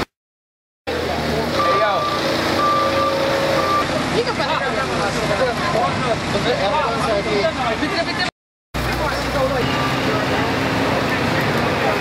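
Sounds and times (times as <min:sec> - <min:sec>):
people talking: 0:00.9 - 0:02.2, 0:04.0 - 0:12.0
vehicle warning beeps: 0:01.6 - 0:03.9.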